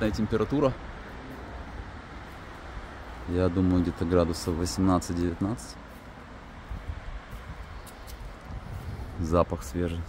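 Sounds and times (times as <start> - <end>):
outdoor hiss and rumble: 0.0 - 10.0.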